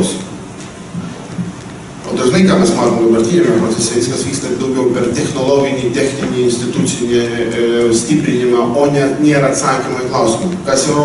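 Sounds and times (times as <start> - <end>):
recording hiss: 0.0 - 11.0
man speaking: 2.0 - 11.0.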